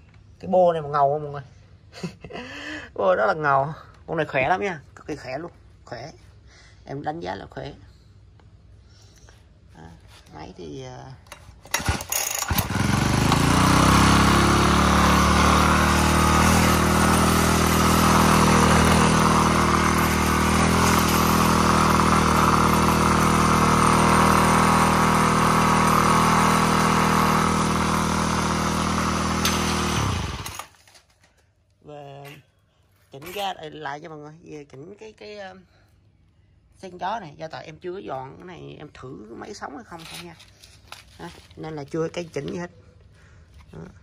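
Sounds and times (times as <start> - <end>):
brush cutter engine running: 11.3 - 31.0.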